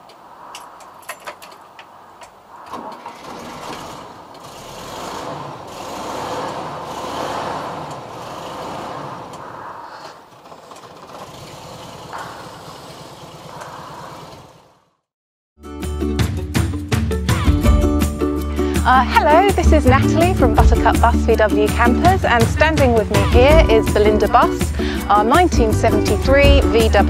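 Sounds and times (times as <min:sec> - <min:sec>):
van engine starting and running: 0:00.0 - 0:15.1, 0:17.3 - 0:27.0.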